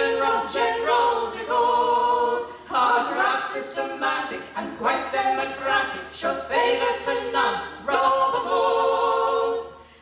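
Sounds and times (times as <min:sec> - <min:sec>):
women singing in harmony: 0:00.0 - 0:10.0.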